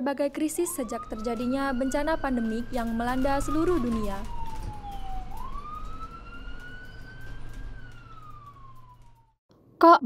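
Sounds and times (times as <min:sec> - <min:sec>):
siren wailing: 0:00.2 - 0:09.4.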